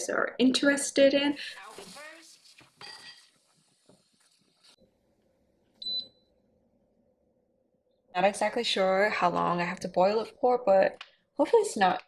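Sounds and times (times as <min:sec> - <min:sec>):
short electronic beep: 0:05.8 - 0:06.2.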